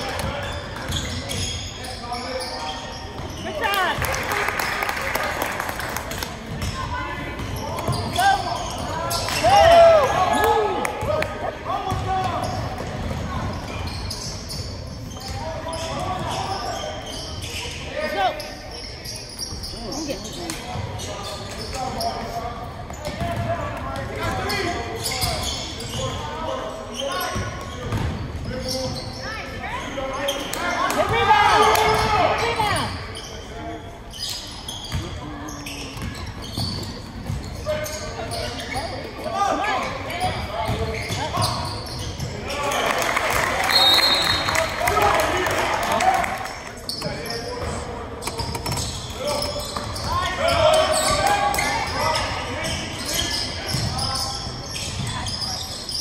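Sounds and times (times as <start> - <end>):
voices of players and spectators: 0.0 - 56.0.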